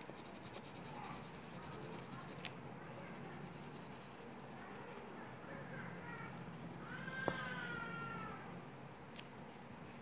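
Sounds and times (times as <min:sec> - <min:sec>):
pen scratching on paper: 0:00.0 - 0:06.8.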